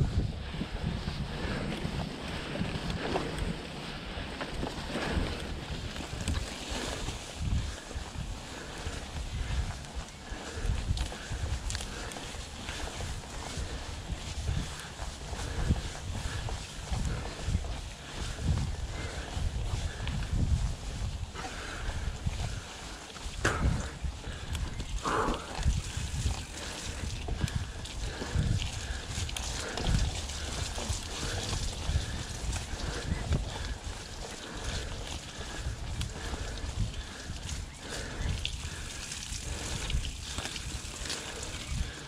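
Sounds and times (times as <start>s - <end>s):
bike clicks and rattles: 0.0s - 42.0s
bike tyres rolling on dirt: 0.0s - 42.0s
wind rumble on microphone: 0.0s - 42.0s
grass swishing against bike: 0.6s - 42.0s.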